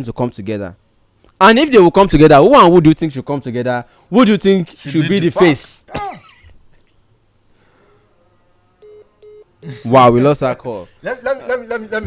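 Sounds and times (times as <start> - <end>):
telephone call-ended beeps: 8.8 - 9.5.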